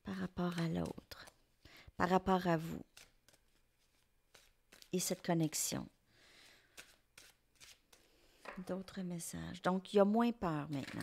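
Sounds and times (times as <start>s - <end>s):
cards rustling: 0.1s - 1.5s, 2.6s - 5.4s, 6.4s - 8.6s.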